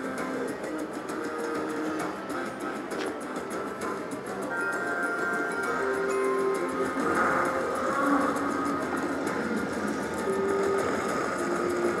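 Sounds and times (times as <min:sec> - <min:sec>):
slot machine bonus music: 0:04.3 - 0:09.5.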